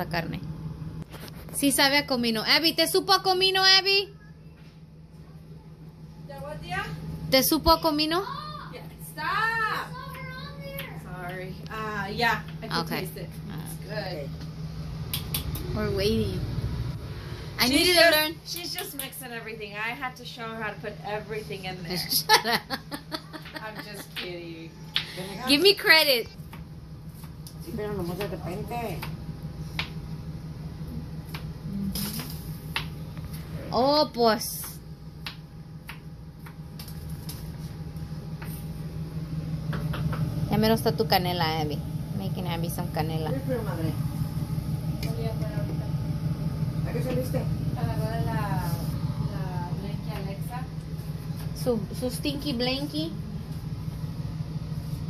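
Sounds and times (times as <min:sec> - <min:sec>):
low hum and rumble: 0:00.0 - 0:55.0.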